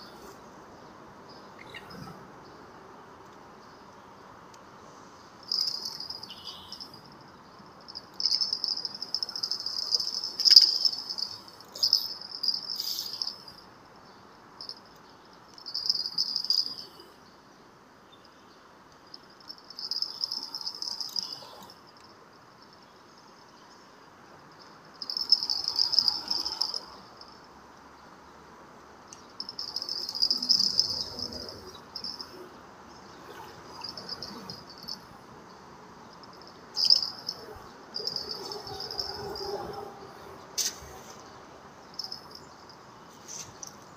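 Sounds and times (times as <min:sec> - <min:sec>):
insects calling high-pitched: 0:01.3 - 0:02.2, 0:05.4 - 0:13.7, 0:14.6 - 0:17.2, 0:19.0 - 0:22.8, 0:24.5 - 0:27.6, 0:29.1 - 0:43.9.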